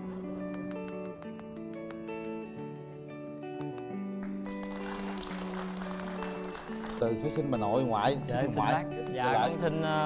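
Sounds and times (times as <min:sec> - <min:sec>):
soft background music: 0:00.0 - 0:10.0
audience applauding: 0:04.2 - 0:07.6.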